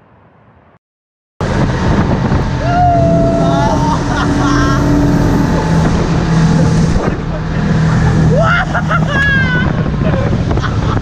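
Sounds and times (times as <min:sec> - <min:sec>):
water rushing past: 0:01.4 - 0:10.6
motorboat engine: 0:01.4 - 0:11.0
people shouting and whooping: 0:02.6 - 0:05.9, 0:08.2 - 0:10.0.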